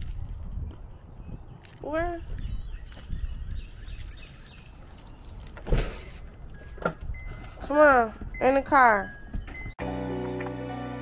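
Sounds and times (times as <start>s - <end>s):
soft footsteps on concrete: 0.0s - 5.1s.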